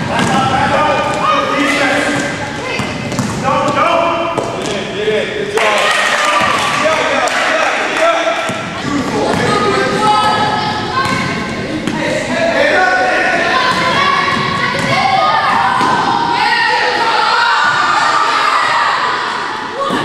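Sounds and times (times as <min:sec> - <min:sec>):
chatter of players and spectators: 0:00.0 - 0:20.0
basketball bouncing on wooden floor: 0:02.7 - 0:03.4.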